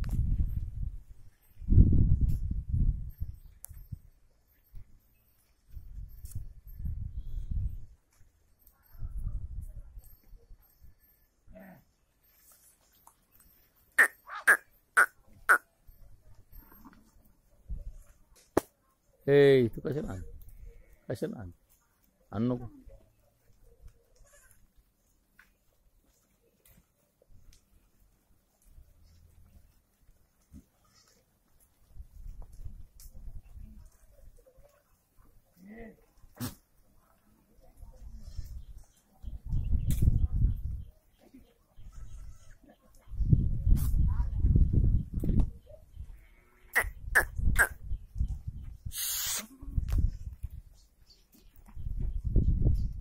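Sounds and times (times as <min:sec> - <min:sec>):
sharp downward-sweeping calls: 0:14.0 - 0:15.6
rumble of goats moving: 0:21.5 - 0:39.5
faint goat bleat: 0:38.0 - 0:38.6, 0:41.8 - 0:42.7.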